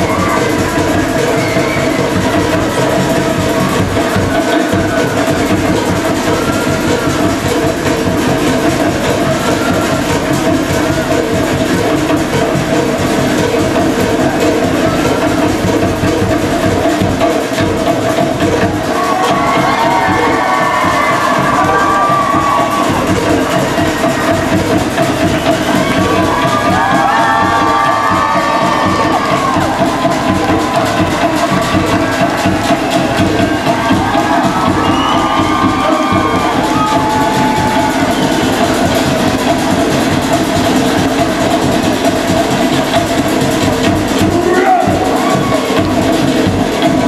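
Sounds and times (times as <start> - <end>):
audience cheering and whooping: 0.0 - 11.2, 18.6 - 42.6, 44.3 - 46.2
live music with drumming: 0.0 - 47.0.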